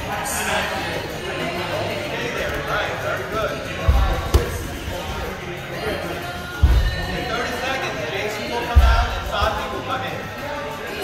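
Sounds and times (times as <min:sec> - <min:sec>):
music: 0:00.0 - 0:11.0
voices: 0:00.0 - 0:11.0.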